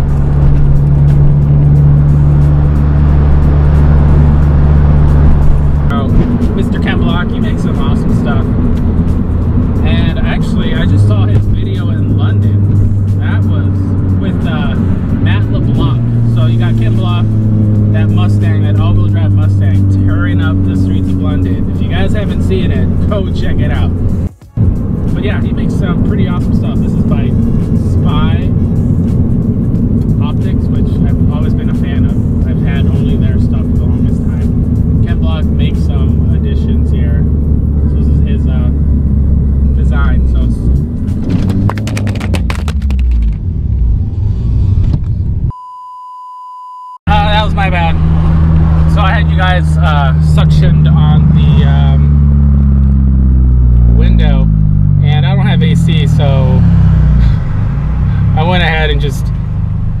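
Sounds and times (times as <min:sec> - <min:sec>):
car engine running: 0:00.0 - 0:45.5, 0:47.1 - 1:00.0.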